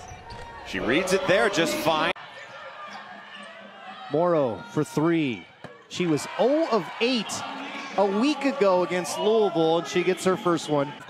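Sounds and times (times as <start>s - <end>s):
faint indoor arena ambience: 0.0s - 11.0s
commentator speaking: 0.8s - 2.2s.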